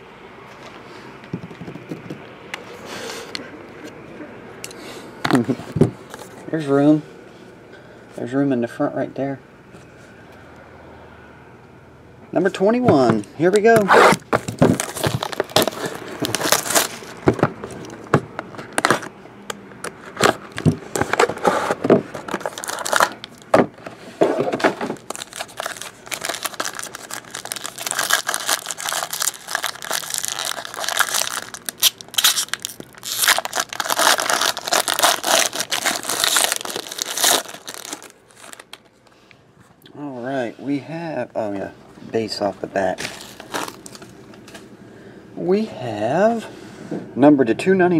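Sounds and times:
foil pack tearing and crinkling: 14.0s - 17.2s, 20.2s - 23.6s, 24.4s - 38.9s, 43.0s - 44.1s
cardboard box opened: 32.2s - 38.7s.

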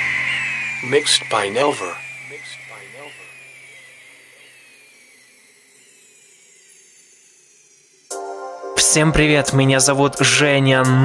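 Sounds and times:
whines sliding down in pitch: 0.0s - 8.2s.

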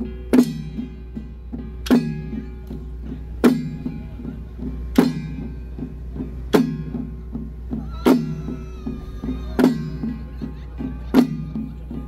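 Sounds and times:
loud ringing drum strike: 0.0s - 12.0s.

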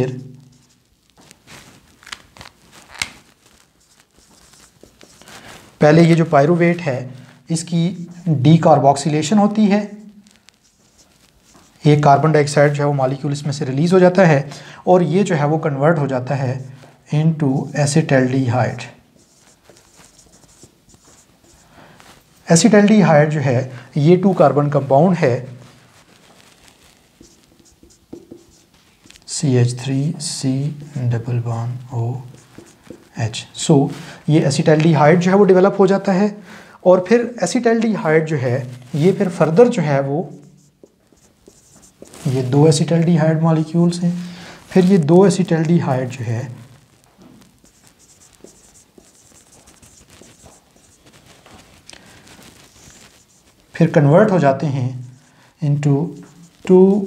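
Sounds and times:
marker writing on whiteboard: 0.1s - 0.8s, 3.8s - 9.8s, 10.6s - 13.4s, 17.3s - 21.8s, 22.5s - 36.3s, 37.0s - 46.6s, 47.2s - 52.1s, 52.7s - 57.0s.

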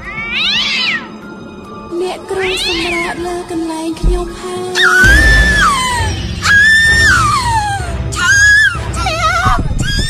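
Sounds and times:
shrill wailing cry: 4.8s - 10.0s.

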